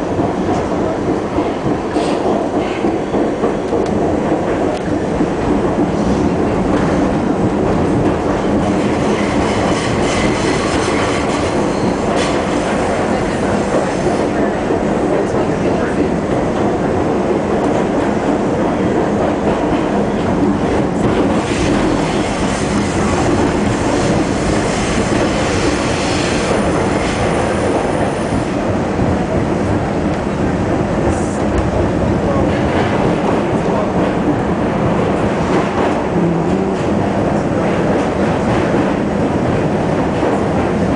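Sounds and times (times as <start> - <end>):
subway train rumbling on rails: 0.0 - 40.9.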